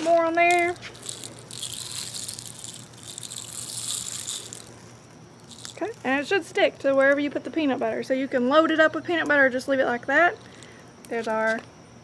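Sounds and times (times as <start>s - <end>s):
birdseed pattering: 0.1s - 6.3s.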